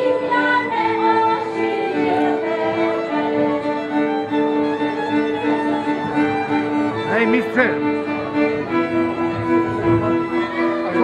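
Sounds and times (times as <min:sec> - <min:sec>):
folk fiddles playing chords: 0:00.0 - 0:11.0
gliding high fiddle notes: 0:00.0 - 0:11.0.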